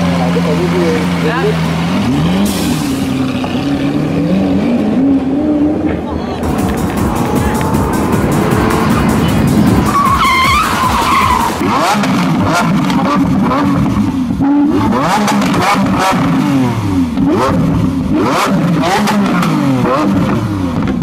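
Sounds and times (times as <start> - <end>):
car engine revving: 0.0 - 21.0
car road noise at highway speed: 0.0 - 21.0
tyres squealing: 6.3 - 12.1.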